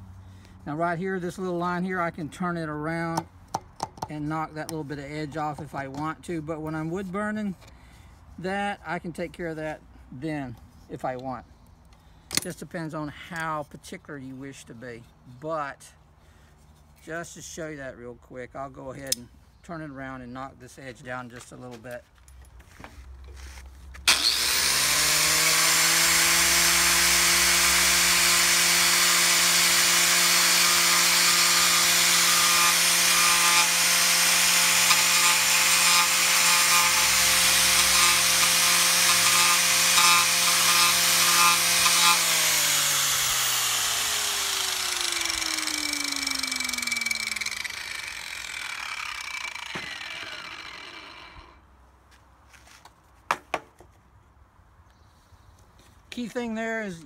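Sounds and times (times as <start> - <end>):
grinder winding down: 24.1 - 51.6
angle grinder cutting wood: 24.1 - 51.7.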